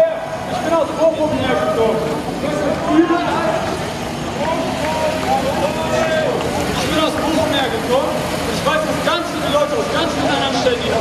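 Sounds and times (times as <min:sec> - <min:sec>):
people talking in a crowd: 0:00.0 - 0:11.0
truck engine running: 0:00.0 - 0:11.0.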